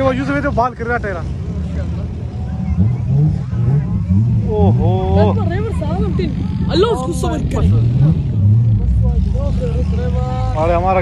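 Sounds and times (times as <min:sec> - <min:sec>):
car engines revving: 0:00.0 - 0:11.0.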